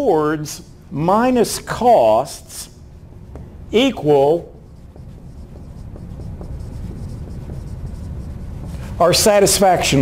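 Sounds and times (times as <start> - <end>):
pen scratching on paper: 4.0 - 9.2.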